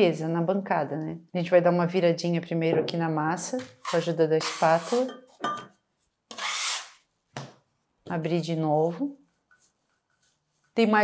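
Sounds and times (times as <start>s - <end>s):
scraper scraping across marble: 3.8s - 5.1s.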